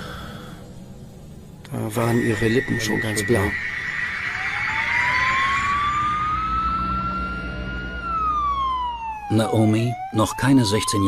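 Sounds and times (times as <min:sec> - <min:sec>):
emergency vehicle siren wailing: 0:01.9 - 0:11.0.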